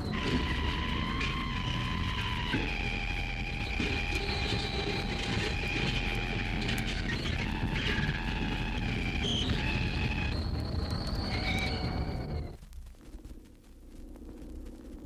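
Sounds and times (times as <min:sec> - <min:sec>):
whining high tones: 0:00.0 - 0:12.6.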